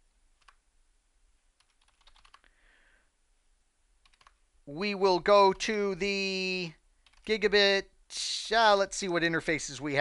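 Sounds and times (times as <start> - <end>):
faint keyboard typing: 0.3 - 0.6, 1.5 - 2.6, 4.0 - 4.5, 7.0 - 7.6.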